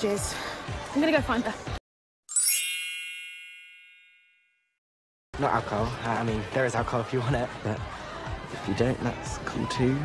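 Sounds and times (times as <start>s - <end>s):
bright chime: 2.3s - 4.7s.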